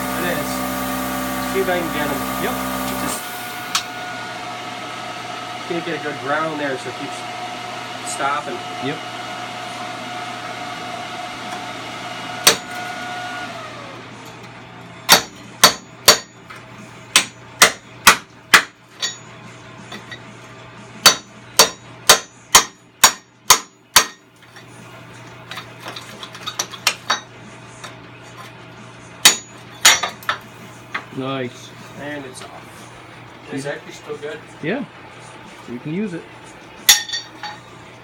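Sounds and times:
plasma cutter hiss and hum: 0:00.0 - 0:03.9.

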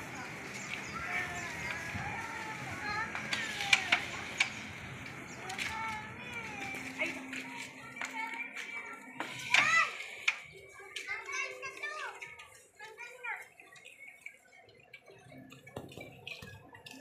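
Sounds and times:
voices of onlookers and children: 0:00.0 - 0:17.0.

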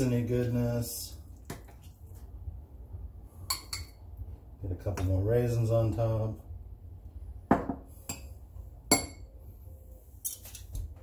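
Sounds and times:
spoon clinking against cup: 0:03.5 - 0:04.0, 0:08.9 - 0:09.2.

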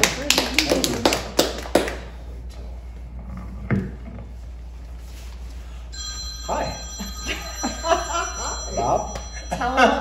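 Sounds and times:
telephone ringing: 0:06.0 - 0:10.0.

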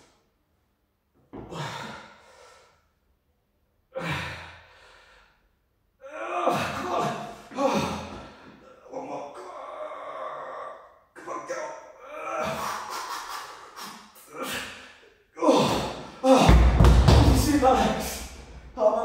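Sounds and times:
man groaning and straining: 0:06.0 - 0:19.0.

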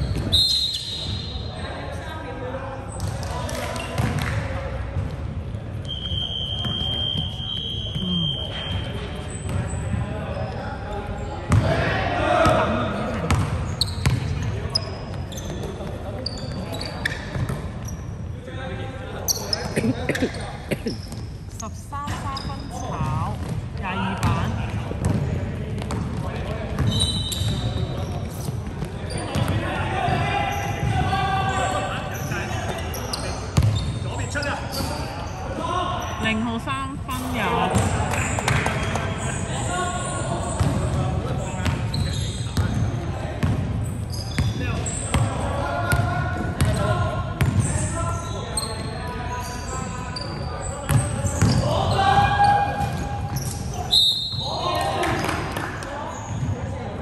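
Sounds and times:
shoe squeaks: 0:00.0 - 0:01.7, 0:05.8 - 0:11.4, 0:13.3 - 0:18.4, 0:19.2 - 0:23.3, 0:26.8 - 0:36.4, 0:37.1 - 0:43.1, 0:43.8 - 0:54.8, 0:56.0 - 0:56.5
players' voices in a hall: 0:00.0 - 0:57.0.

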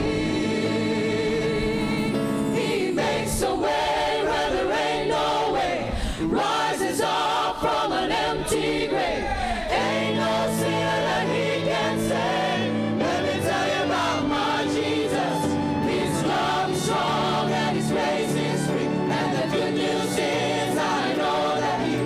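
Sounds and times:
choir singing gospel: 0:00.0 - 0:22.0
keyboard: 0:00.0 - 0:22.0
lead singer: 0:00.0 - 0:22.0
violins: 0:09.7 - 0:22.0.

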